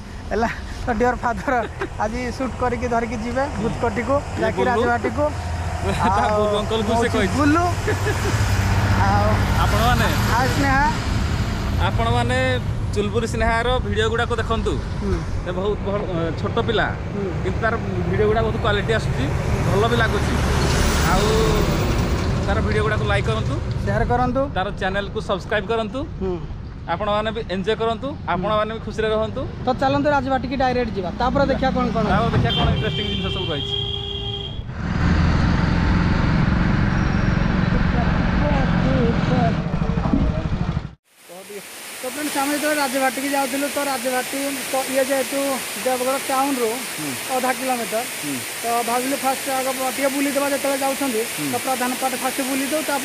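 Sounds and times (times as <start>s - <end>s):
man's voice: 0.0s - 8.3s, 41.3s - 53.0s
road and wind noise: 0.0s - 53.0s
truck diesel engine passing: 0.9s - 12.9s, 17.0s - 23.6s, 34.7s - 40.6s.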